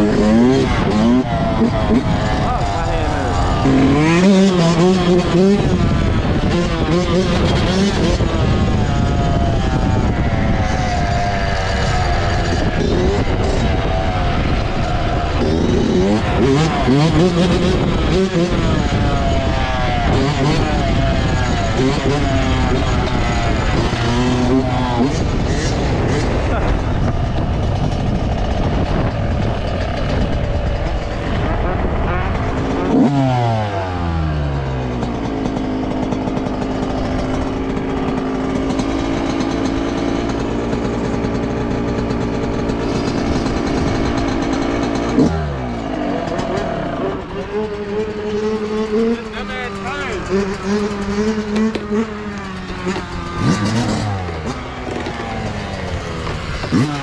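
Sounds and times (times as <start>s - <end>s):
dirt bike engine revving: 0.0s - 57.0s
wind noise on microphone: 0.0s - 57.0s.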